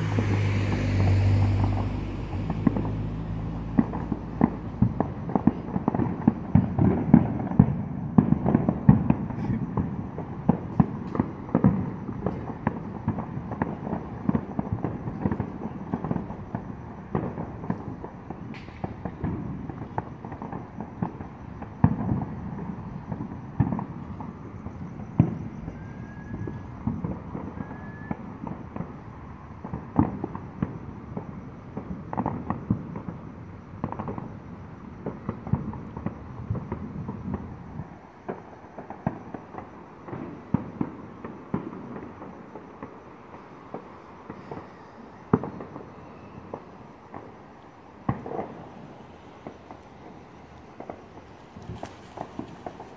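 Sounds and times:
fireworks popping and banging: 0.0 - 52.9
loud firework bangs: 0.0 - 52.9.

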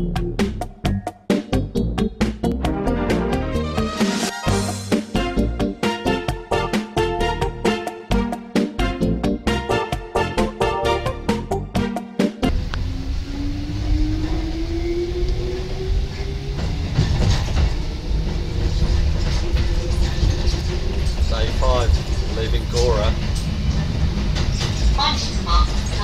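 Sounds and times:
electric train motors whining: 12.5 - 26.0
wheels rumbling on track: 12.5 - 26.0.

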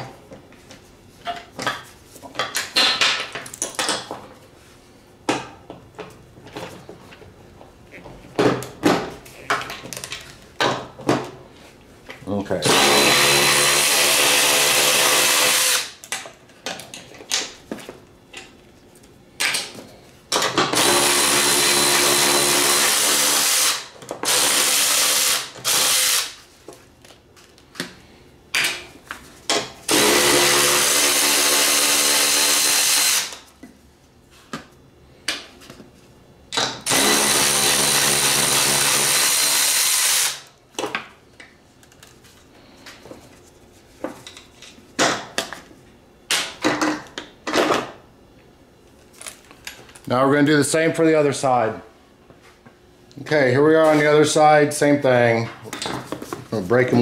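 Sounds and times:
cordless electric ratchet running: 20.8 - 26.4, 36.9 - 40.5.

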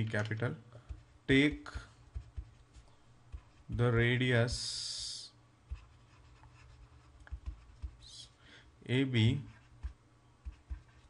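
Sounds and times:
stylus scratching on tablet: 0.9 - 4.7, 5.7 - 8.3, 9.2 - 11.0.

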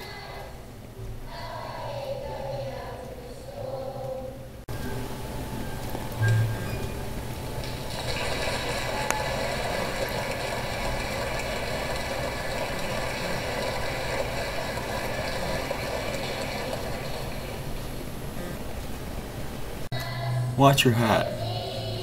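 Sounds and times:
low hum: 3.3 - 22.0.

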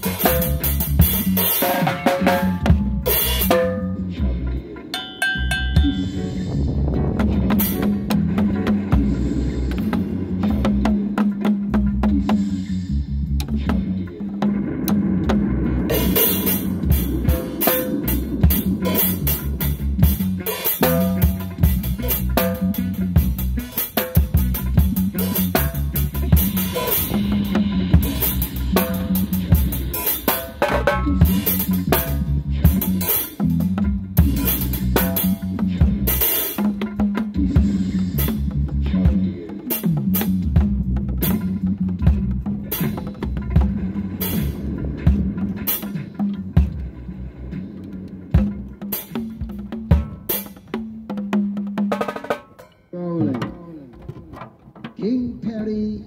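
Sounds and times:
deep steady bass line: 0.0 - 50.3
drum kit playing: 0.0 - 55.8.

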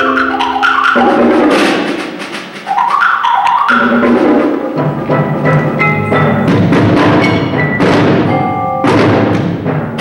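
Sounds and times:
percussion ensemble with marimbas: 0.0 - 10.0.

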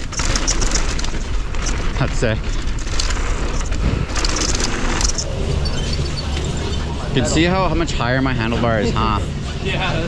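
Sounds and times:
bike tyre rumble on dirt: 0.0 - 7.4
bike rattling: 0.0 - 10.0
low mechanical hum: 0.0 - 10.0.

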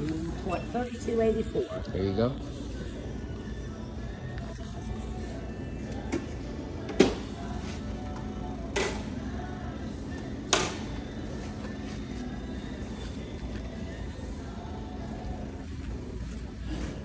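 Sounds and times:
faint music: 0.0 - 17.0
steady low hum: 0.0 - 17.0.

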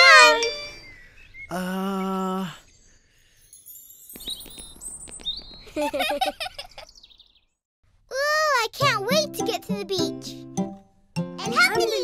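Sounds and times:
high chirps and twitters: 0.0 - 1.0.

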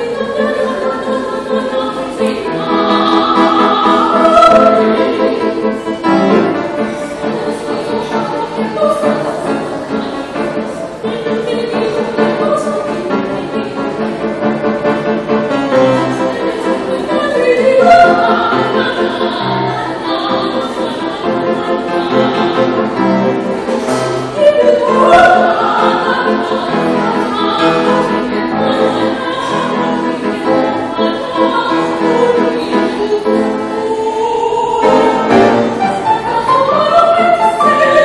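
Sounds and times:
woman singing operatically: 0.0 - 5.8, 7.1 - 14.2, 15.9 - 23.0, 24.3 - 38.0
piano accompaniment: 0.0 - 38.0.

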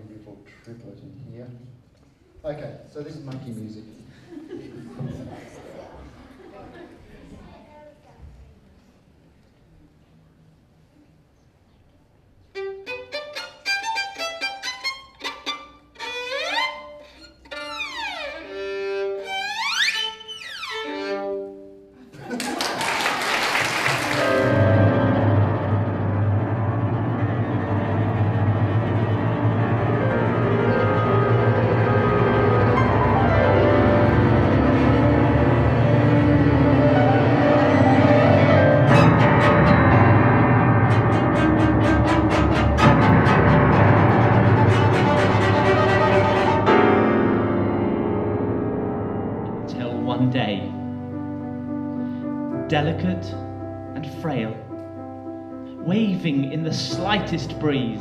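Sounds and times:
string quintet playing: 12.5 - 22.1, 23.4 - 58.0.

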